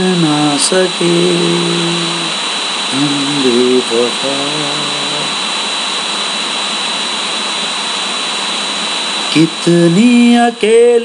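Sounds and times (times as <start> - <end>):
man singing unaccompanied: 0.0 - 5.4, 9.3 - 11.0
loud steady hiss: 0.0 - 11.0
thin high whine: 0.0 - 11.0.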